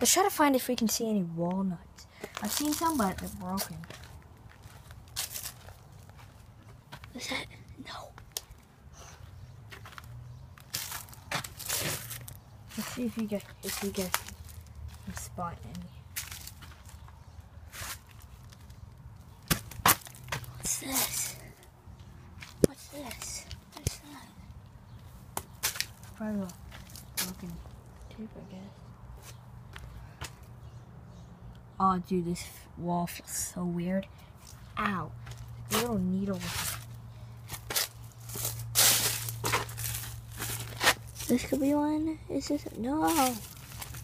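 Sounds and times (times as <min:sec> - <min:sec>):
footsteps crunching on dry leaves: 0:02.3 - 0:07.0, 0:09.7 - 0:17.1, 0:35.2 - 0:41.6, 0:43.0 - 0:44.0
leaves rustling: 0:02.4 - 0:06.1, 0:35.7 - 0:41.8, 0:42.6 - 0:44.0
sharp snaps and knocks: 0:19.4 - 0:20.6.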